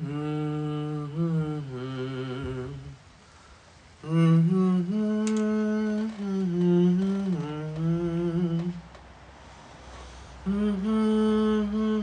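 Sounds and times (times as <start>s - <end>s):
man humming a slow tune: 0.0s - 3.0s, 4.0s - 9.0s, 10.4s - 12.0s.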